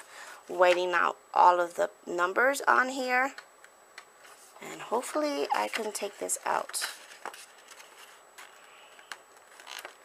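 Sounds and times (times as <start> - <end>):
paper handling: 5.2 - 10.0.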